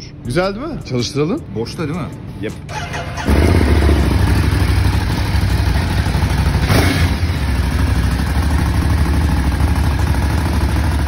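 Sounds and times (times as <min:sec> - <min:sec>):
motorcycle engine idling: 0:02.7 - 0:11.0.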